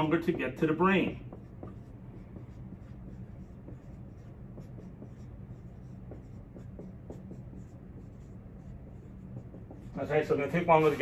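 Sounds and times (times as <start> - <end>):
marker strokes on whiteboard: 0.0 - 11.0
steady low hum: 0.0 - 11.0.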